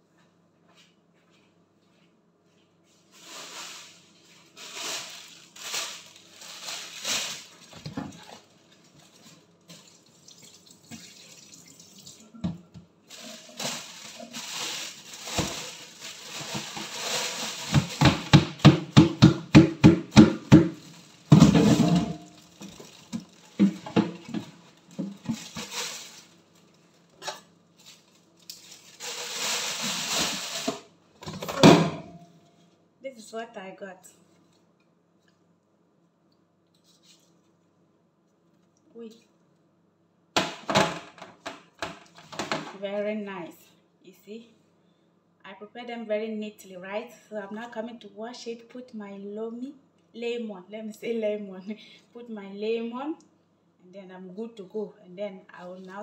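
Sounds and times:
water splashing in a sink: 5.0s - 18.1s.

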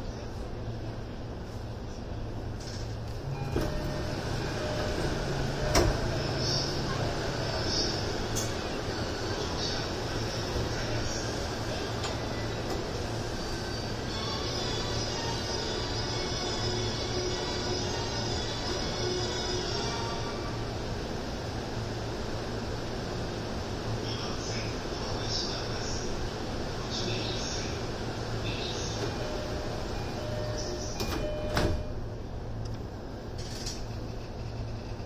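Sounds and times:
train low hum: 0.0s - 35.0s.

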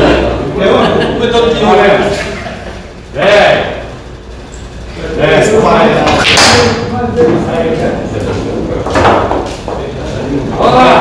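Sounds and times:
pool balls knocking: 8.8s - 10.0s.

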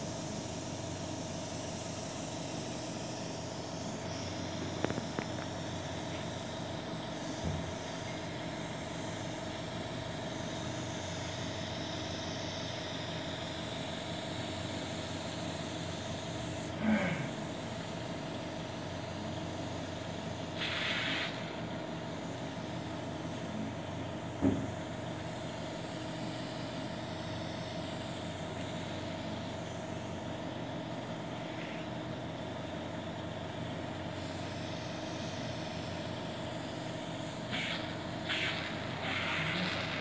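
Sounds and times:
steady machine hum: 0.0s - 40.0s
short bursts of hiss: 20.6s - 21.6s, 37.5s - 40.0s.

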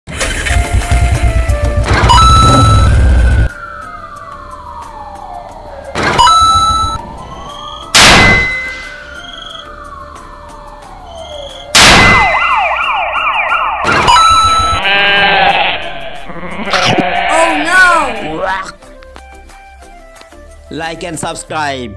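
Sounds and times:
slow wailing siren: 2.1s - 15.3s
fast yelping police siren: 11.1s - 14.8s
sudden loud hits: 11.8s - 12.5s
goat bleating: 14.8s - 18.7s.

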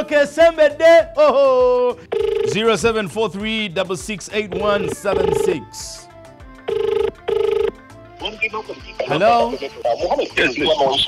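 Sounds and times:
telephone ringback tone: 2.1s - 2.6s, 4.5s - 5.6s, 6.6s - 7.8s.

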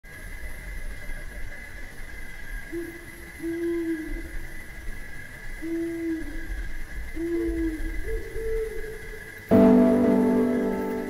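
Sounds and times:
steady high-pitched hum: 0.1s - 11.0s
low hooting notes: 9.5s - 11.0s.

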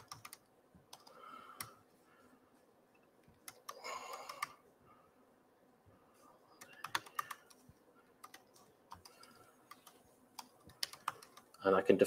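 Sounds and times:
typing on a laptop keyboard: 0.0s - 1.8s, 3.4s - 4.6s, 6.6s - 7.6s, 8.2s - 11.6s.

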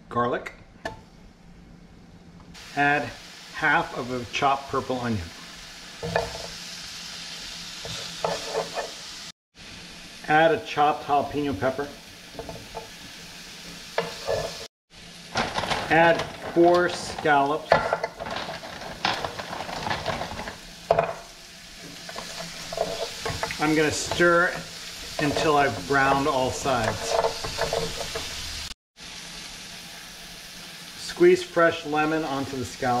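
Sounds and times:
vegetables sizzling in a frying pan: 2.6s - 33.0s
wooden spatula stirring: 21.8s - 28.4s.

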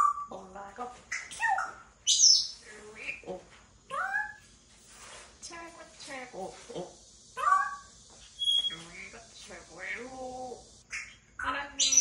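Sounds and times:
parrot whistles and chirps: 0.0s - 0.3s, 1.1s - 2.6s, 7.4s - 8.9s, 11.8s - 12.0s
parrot mimicking speech: 0.0s - 2.2s, 3.0s - 4.4s, 6.3s - 7.9s, 9.8s - 12.0s.

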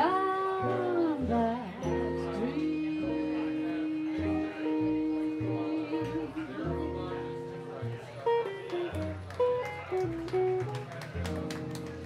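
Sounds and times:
woman singing jazz: 0.0s - 7.0s
jazz guitar: 0.0s - 12.0s
upright bass plucking: 0.0s - 12.0s.

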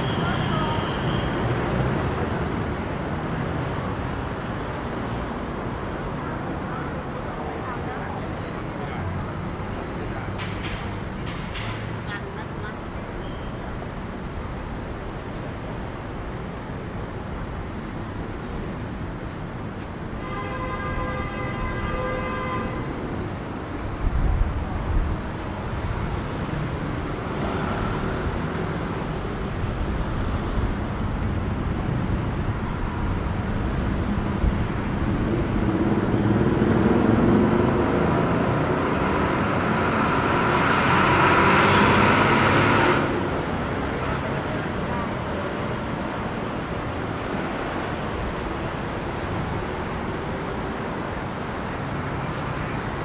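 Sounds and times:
road traffic: 0.0s - 53.0s
vehicle horn: 20.2s - 22.9s
loud rushing vehicle: 23.0s - 53.0s.

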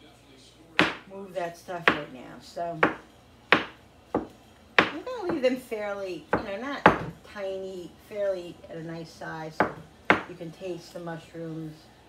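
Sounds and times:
knife chopping mushrooms: 0.8s - 1.1s, 1.8s - 2.2s, 2.8s - 5.5s, 6.3s - 7.2s, 9.6s - 10.3s.

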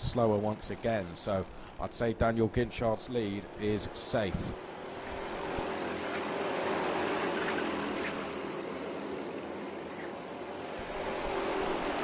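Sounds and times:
racing kart engines passing: 0.1s - 12.0s.

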